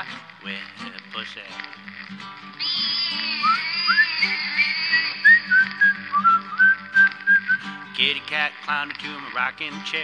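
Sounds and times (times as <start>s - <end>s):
whistled tune: 2.6s - 8.0s.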